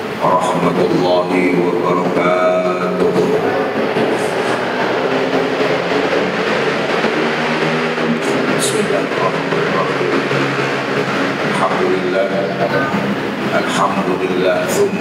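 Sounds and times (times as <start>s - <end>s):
steady rushing noise: 0.0s - 15.0s
man talking into microphone: 0.2s - 4.5s, 8.2s - 10.6s, 11.4s - 15.0s.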